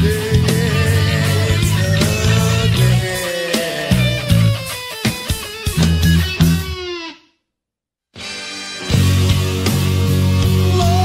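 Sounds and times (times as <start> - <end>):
electric bass playing: 0.0 - 7.0, 8.2 - 11.0
rock band playing: 0.0 - 7.2, 8.2 - 11.0.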